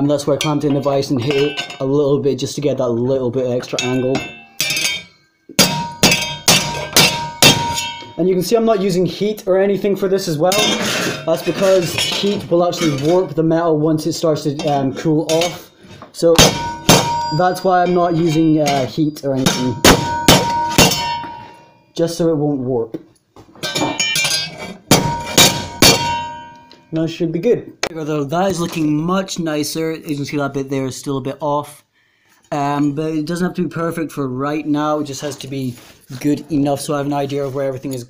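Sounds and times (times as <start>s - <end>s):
metal panel ringing: 3.7s - 8.2s, 16.4s - 21.5s, 24.9s - 26.7s
rubber mallet striking sheet metal: 3.8s - 8.2s, 16.3s - 18.8s, 19.4s - 21.6s, 23.7s - 26.7s.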